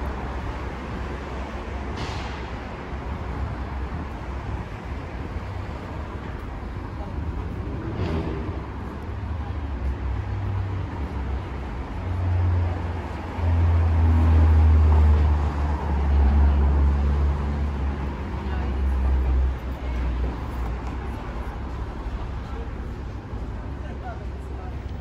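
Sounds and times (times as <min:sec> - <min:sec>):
hiss of passing cars: 0:00.2 - 0:05.8
vehicle engine rumbling past: 0:07.2 - 0:09.4.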